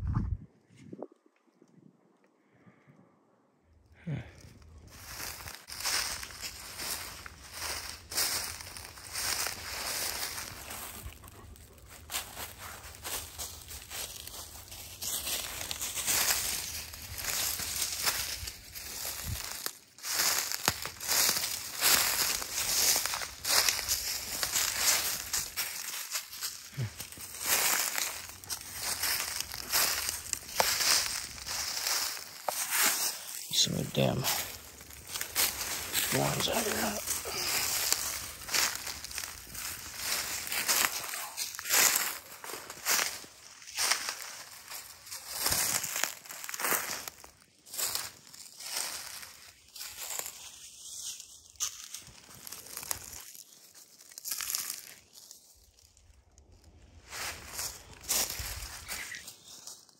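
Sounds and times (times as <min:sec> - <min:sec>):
footsteps crunching through dry leaves: 0:04.3 - 0:59.9.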